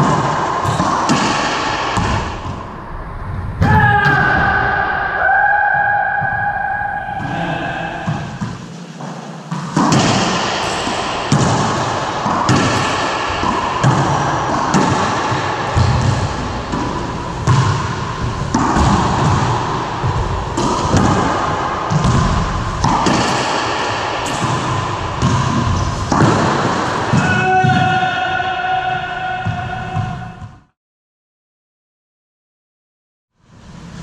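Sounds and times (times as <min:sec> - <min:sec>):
ball hits echoing in court: 0:00.0 - 0:02.7, 0:07.1 - 0:30.6.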